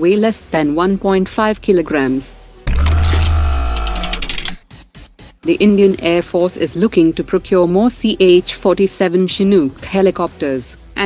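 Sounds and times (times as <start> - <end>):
deep bass hit: 2.7 - 3.8.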